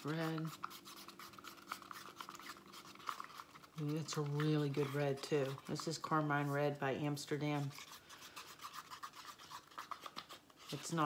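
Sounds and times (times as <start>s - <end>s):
stir stick scraping paper cup: 0.0s - 11.0s.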